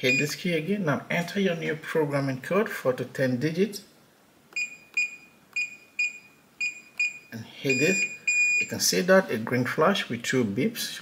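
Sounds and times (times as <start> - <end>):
keypad beeping: 4.6 - 8.7.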